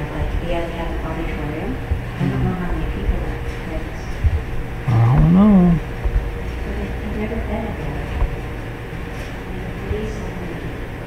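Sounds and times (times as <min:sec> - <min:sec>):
low background rumble: 0:00.0 - 0:08.6
person humming: 0:02.2 - 0:02.7, 0:04.9 - 0:05.8.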